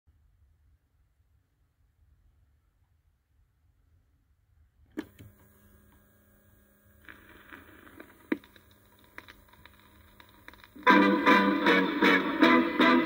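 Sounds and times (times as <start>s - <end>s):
steady hum: 4.8s - 13.0s
vinyl surface noise and crackles: 5.0s - 13.0s
stylus click on record: 7.0s - 11.7s
vinyl pop: 7.0s - 13.0s.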